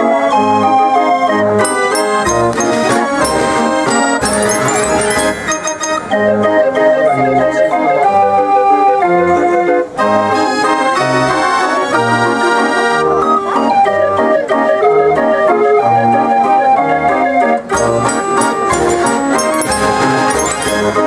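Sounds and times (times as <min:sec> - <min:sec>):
street organ playing tune: 0:00.0 - 0:21.0.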